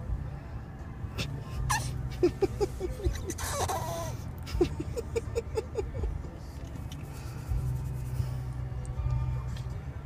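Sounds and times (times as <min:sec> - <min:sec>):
car interior hum: 0:00.0 - 0:10.0
baby squeaky grunts: 0:01.7 - 0:02.0, 0:03.2 - 0:04.2.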